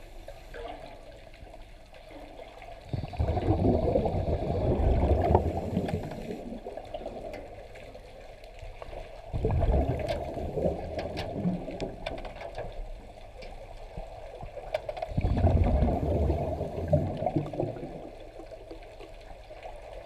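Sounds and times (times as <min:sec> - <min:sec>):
underwater bubbling and churning: 0:00.0 - 0:20.0
faint clicks: 0:05.1 - 0:09.1, 0:10.0 - 0:15.2.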